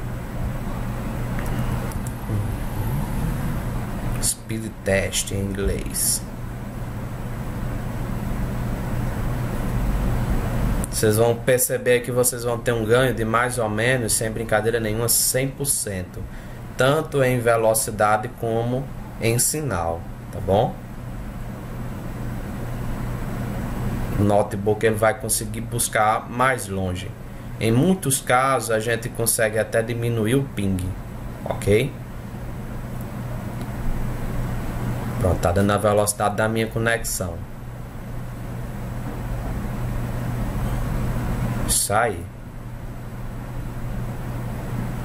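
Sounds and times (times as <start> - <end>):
low background hum: 0.0 - 45.0.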